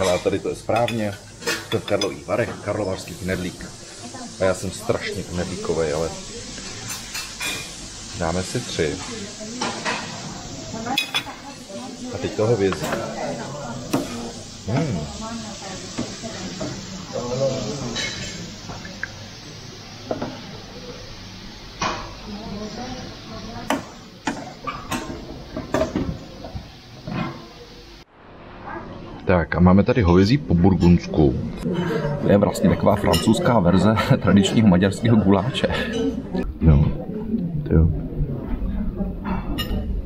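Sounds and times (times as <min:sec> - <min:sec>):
faint background chatter: 0:00.0 - 0:40.0
metal tongs clinking on tray and plate: 0:10.9 - 0:11.6.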